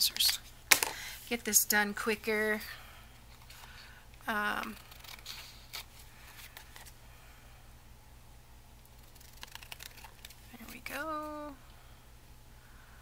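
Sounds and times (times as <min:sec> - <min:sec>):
scissors snipping paper: 0:04.6 - 0:05.9.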